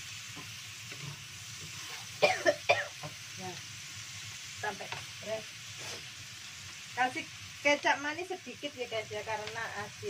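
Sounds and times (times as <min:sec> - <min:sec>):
food sizzling in hot oil: 0:00.0 - 0:10.0.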